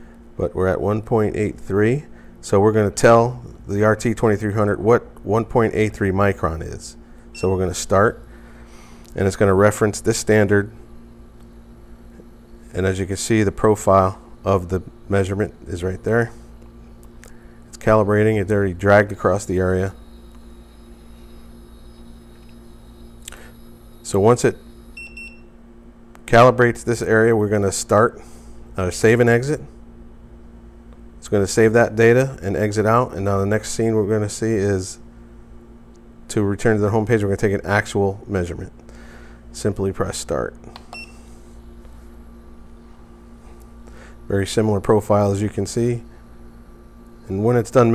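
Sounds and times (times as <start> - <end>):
faint low two-tone hum: 0.0 - 47.9.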